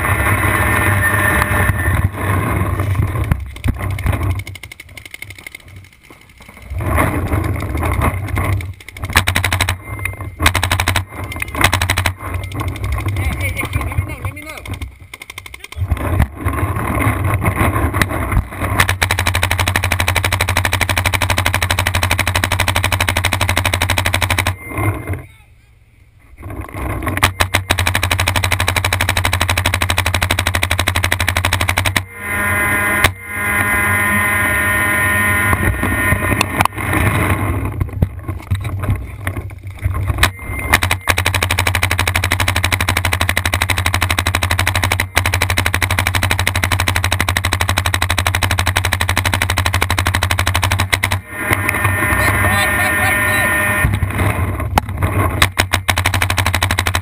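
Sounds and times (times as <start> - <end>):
paintball markers firing: 3.0 - 9.8, 10.4 - 16.3, 17.5 - 24.6, 27.0 - 32.1, 40.1 - 51.3, 54.8 - 57.0.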